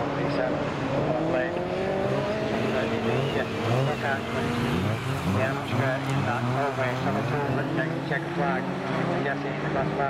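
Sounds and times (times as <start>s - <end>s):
racing car engines passing: 0.0s - 10.0s.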